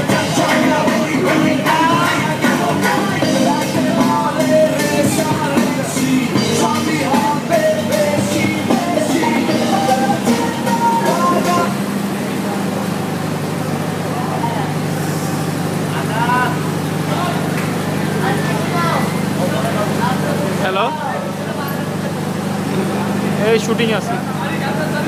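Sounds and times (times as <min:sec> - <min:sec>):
background voices: 0:00.0 - 0:15.3
low motor hum: 0:00.0 - 0:24.4.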